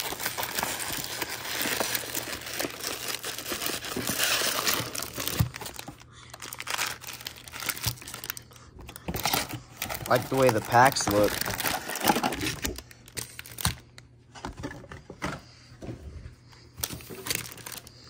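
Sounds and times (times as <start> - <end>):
foil packs crinkling: 0.0 - 14.0, 16.8 - 18.0.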